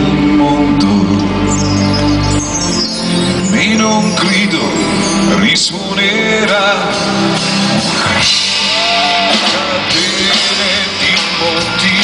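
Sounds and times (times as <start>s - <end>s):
drums: 0.0s - 12.0s
electric guitar: 4.8s - 12.0s.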